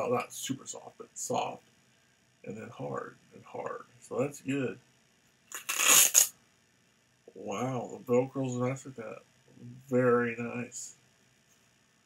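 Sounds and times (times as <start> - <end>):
velcro strap ripping open: 5.5 - 6.3.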